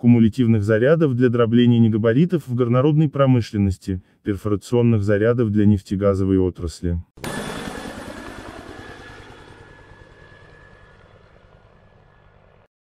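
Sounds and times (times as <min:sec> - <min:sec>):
noisy sound with low flutter: 0:07.2 - 0:12.7.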